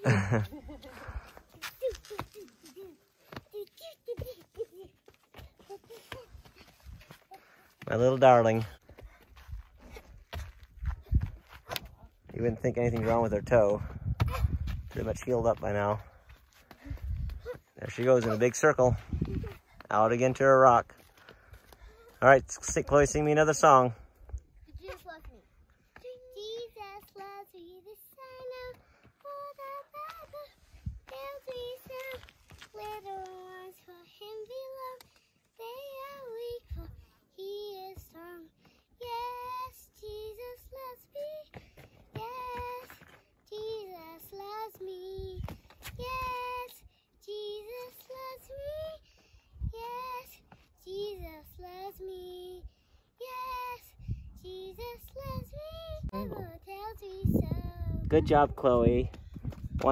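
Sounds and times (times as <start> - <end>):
girl singing unaccompanied: 0.0 - 7.5, 24.5 - 58.6.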